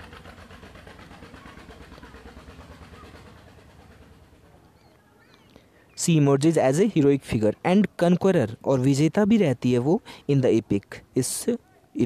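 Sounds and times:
faint engine rumble: 0.0s - 12.0s.

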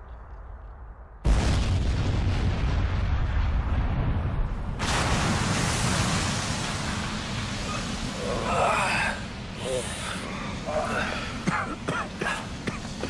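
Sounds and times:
low rumble of explosions: 0.0s - 13.0s.

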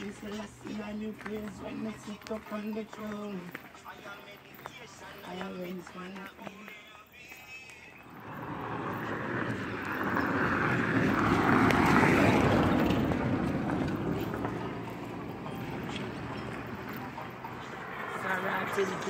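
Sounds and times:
vehicle passing by: 8.0s - 19.0s.

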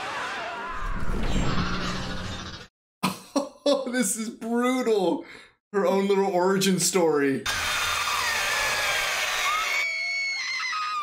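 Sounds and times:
woman screaming: 7.9s - 11.0s.

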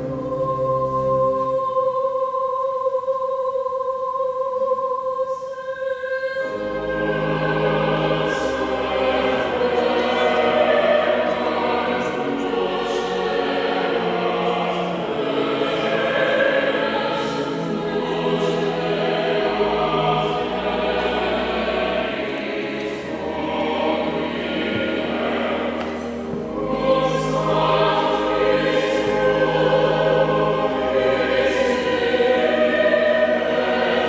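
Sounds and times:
many voices singing a hymn: 0.0s - 34.0s
sustained bass accompaniment: 6.5s - 34.0s.

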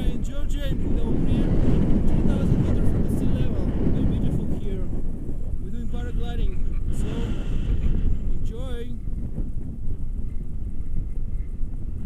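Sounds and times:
wind buffeting microphone: 0.0s - 12.0s
person speaking: 5.6s - 7.5s.

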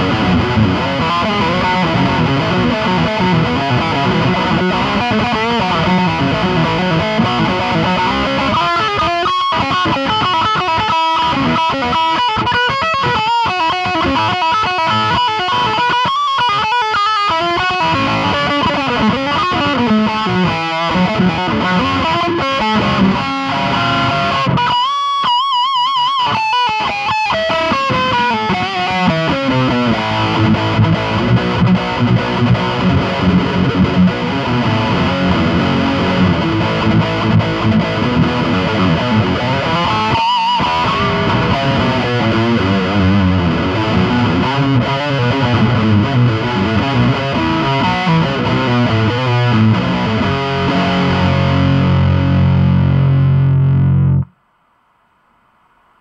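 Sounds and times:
distorted electric guitar: 0.0s - 56.0s.

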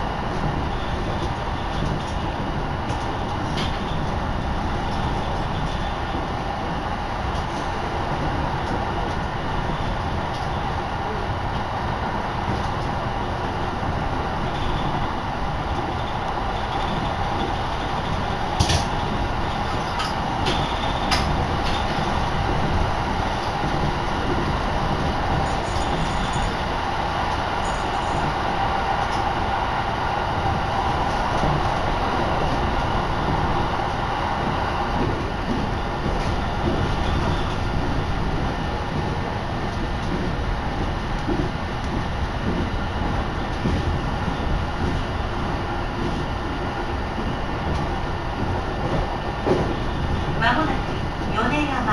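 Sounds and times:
train running noise inside car: 0.0s - 51.9s.

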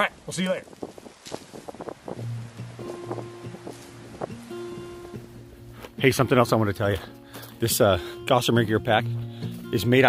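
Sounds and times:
music with sustained tones: 2.2s - 10.0s.

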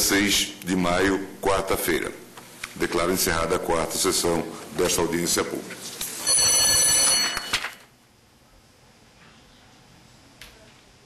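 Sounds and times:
bell ringing: 6.2s - 7.8s.

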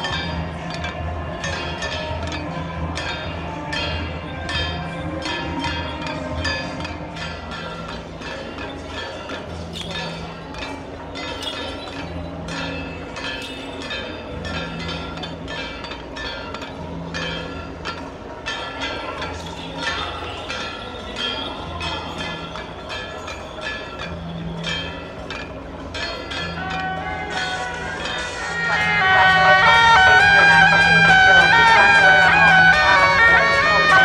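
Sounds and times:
shrill suona horns: 26.6s - 34.0s.

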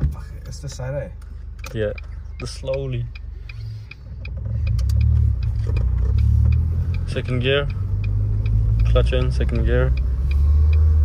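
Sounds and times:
car engine revving pulling away: 3.6s - 11.0s.

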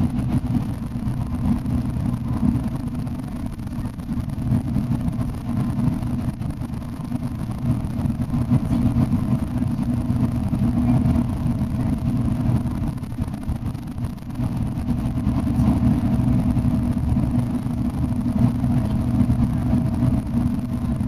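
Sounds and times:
coach engine and tyres droning: 0.0s - 21.0s.

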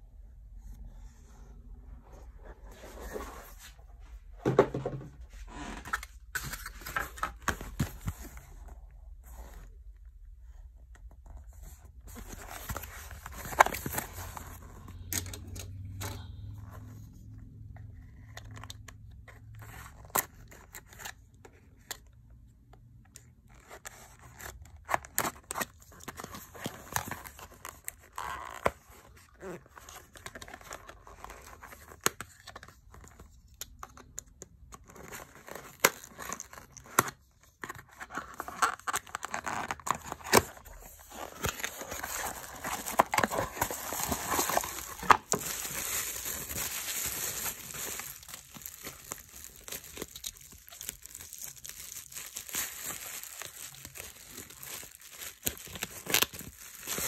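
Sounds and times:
packaging clicks and scrapes: 11.4s - 17.1s, 23.5s - 57.0s
bubble wrap crinkling: 12.1s - 15.3s, 35.0s - 57.0s.

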